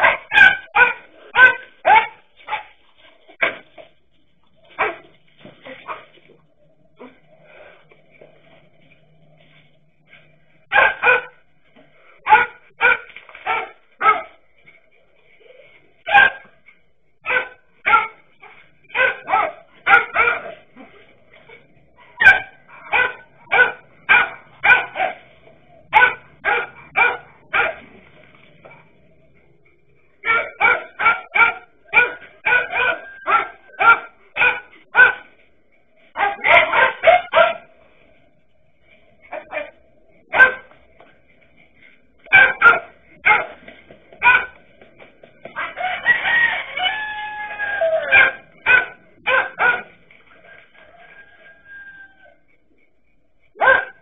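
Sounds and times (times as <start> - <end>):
dogs barking sharply: 0.0 - 2.8, 3.4 - 3.8, 4.7 - 5.2, 10.6 - 11.5, 12.2 - 14.4, 16.0 - 16.6, 17.2 - 20.7, 22.0 - 28.0, 30.2 - 35.4, 36.1 - 37.7, 39.3 - 40.8, 42.2 - 44.7, 45.4 - 50.1, 53.5 - 54.0.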